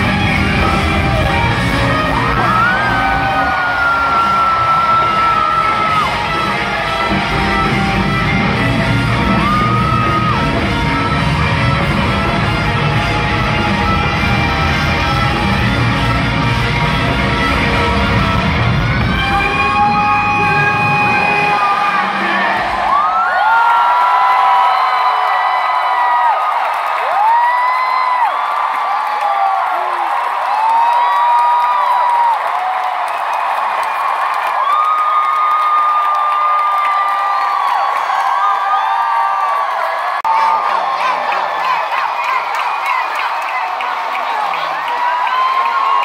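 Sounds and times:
live rock band music: 0:00.0 - 0:22.2
arena crowd cheering and screaming: 0:00.0 - 0:46.0.

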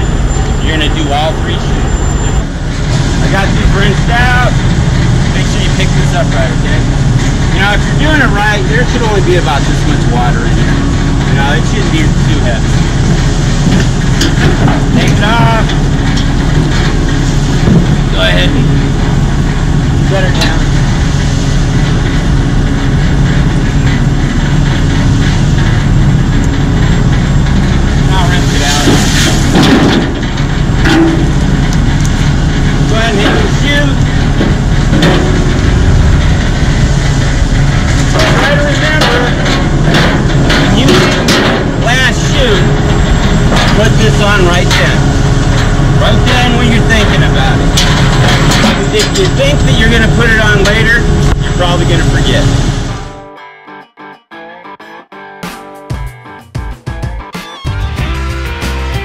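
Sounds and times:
diesel engine idling: 0:00.0 - 0:53.2
metal bucket knocks and clanks: 0:26.9 - 0:52.5.

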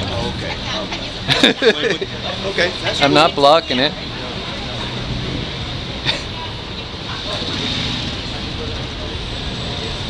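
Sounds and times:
traffic hum: 0:00.0 - 0:10.0.

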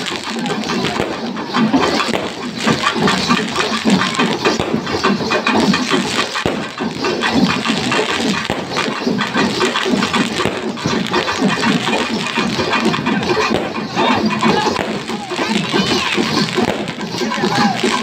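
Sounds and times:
crowd din: 0:00.0 - 0:18.0
percussive festival music: 0:00.0 - 0:18.0.

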